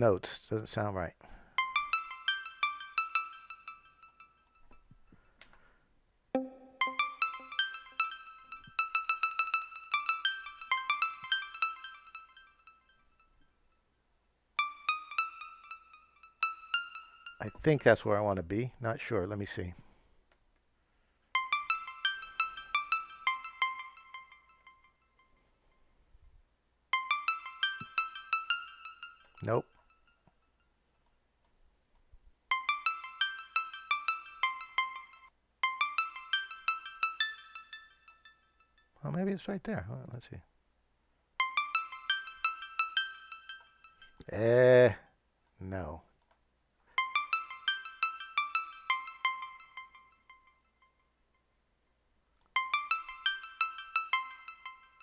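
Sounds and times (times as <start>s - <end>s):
synth pluck notes: 6.4s - 12.7s, 26.9s - 29.8s
synth pluck melody: 6.4s - 13.0s, 14.6s - 17.7s, 21.4s - 25.3s, 26.9s - 30.1s, 32.5s - 38.2s, 41.4s - 44.3s, 47.0s - 51.0s, 52.6s - 55.0s.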